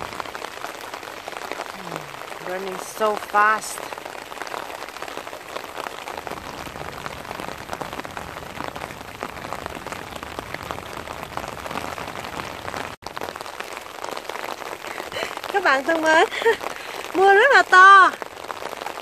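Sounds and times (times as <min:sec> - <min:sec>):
floodwater rushing down a channel: 0:00.0 - 0:19.0
heavy rain pattering: 0:00.0 - 0:19.0.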